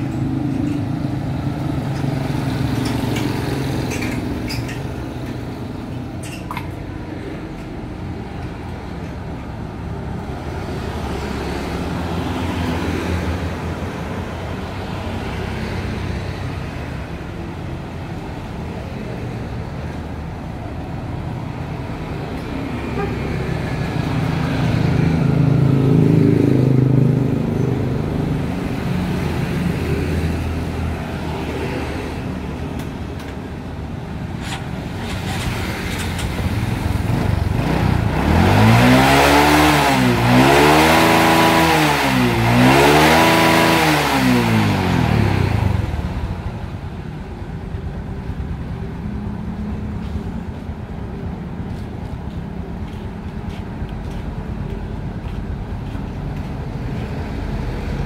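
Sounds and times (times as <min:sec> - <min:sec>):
road traffic rumble: 0:00.0 - 0:58.0
motorcycle engine revving: 0:34.4 - 0:46.4.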